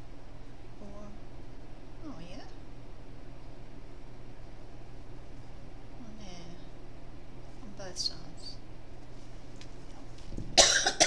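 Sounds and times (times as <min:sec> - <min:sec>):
person coughing: 0:10.6 - 0:11.0.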